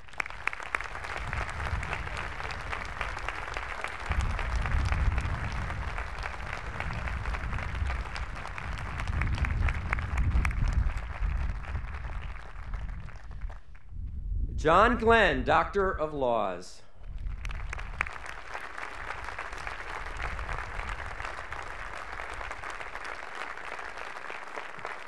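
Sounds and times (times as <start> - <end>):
audience applauding: 0.0 - 13.7, 17.2 - 25.0.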